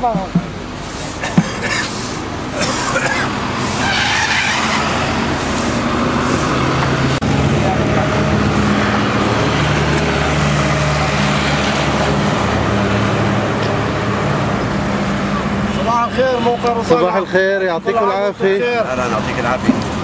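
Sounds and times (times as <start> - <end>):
passing cars rushing: 0.0 - 20.0
vehicle engine running: 0.6 - 15.8.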